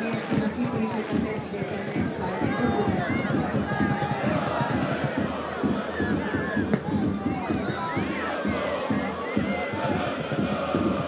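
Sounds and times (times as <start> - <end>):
low crowd murmur: 0.0 - 11.0
players and spectators shouting: 0.0 - 11.0.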